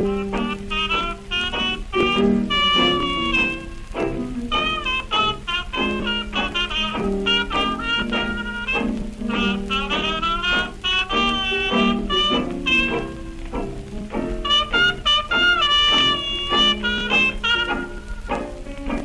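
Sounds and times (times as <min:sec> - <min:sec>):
small-band jazz on old record: 0:00.0 - 0:19.0.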